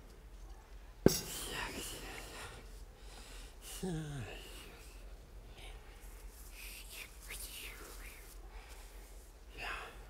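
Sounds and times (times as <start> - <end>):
person whispering breathily: 1.2 - 2.8, 3.5 - 10.0.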